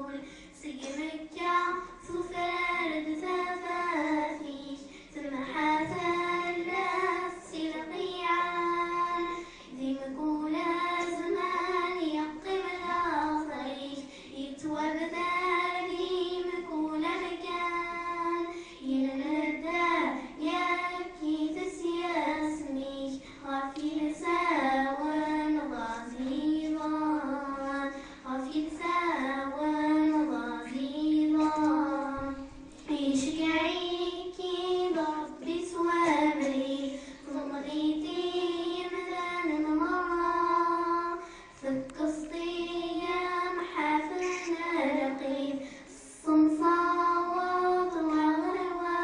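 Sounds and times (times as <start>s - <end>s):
girls singing: 0.0s - 49.0s.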